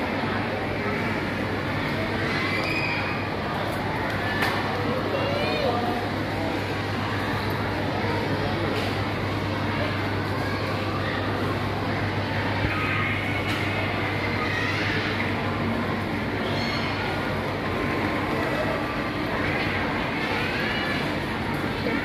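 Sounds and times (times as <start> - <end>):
indistinct shopper chatter: 0.0 - 22.0.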